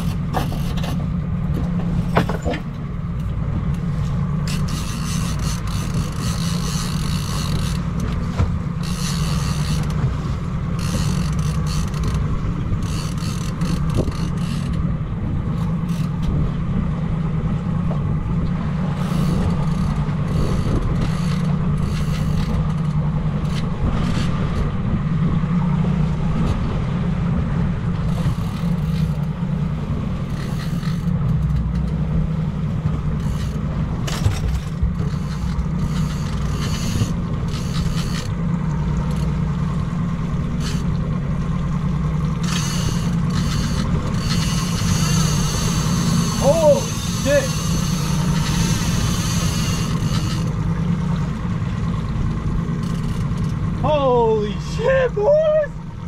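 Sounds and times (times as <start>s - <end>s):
wind and water hissing: 0.0s - 31.3s, 32.0s - 56.0s
outboard motor droning: 0.0s - 56.0s.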